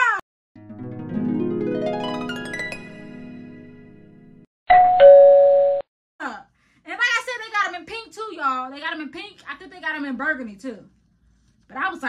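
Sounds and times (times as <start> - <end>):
plucked harp-like jingle: 0.7 - 4.3
ding-dong doorbell chime: 4.7 - 5.8.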